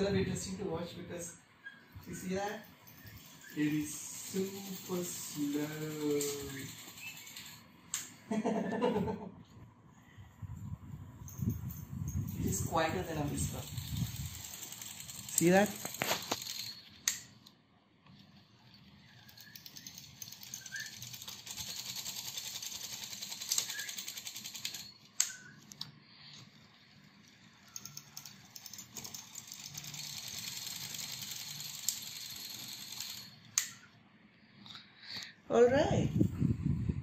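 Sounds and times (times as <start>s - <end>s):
knitting machine needles clattering: 1.9s - 8.0s, 11.4s - 17.4s, 18.1s - 33.7s
sharp clicks: 13.8s - 18.2s.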